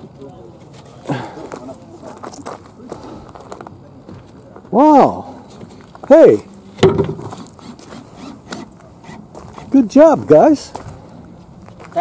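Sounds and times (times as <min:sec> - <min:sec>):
faint voices: 0:00.0 - 0:06.7.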